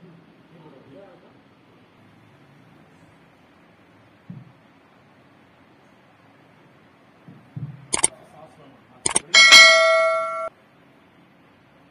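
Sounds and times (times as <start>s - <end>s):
sharp clicks: 7.9s - 8.1s, 9.1s - 9.3s
notification bell ding: 9.1s - 10.5s.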